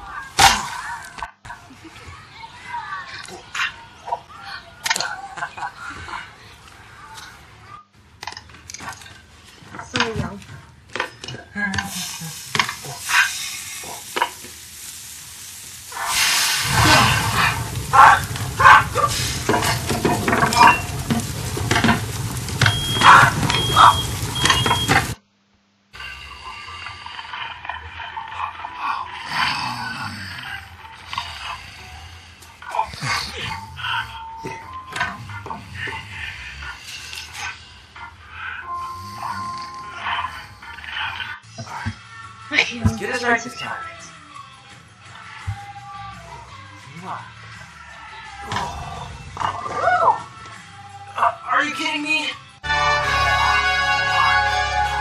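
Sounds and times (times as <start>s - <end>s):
food sizzling on grill: 11.8s - 25.2s, 26.0s - 33.8s
music: 30.7s - 36.0s, 38.0s - 55.0s.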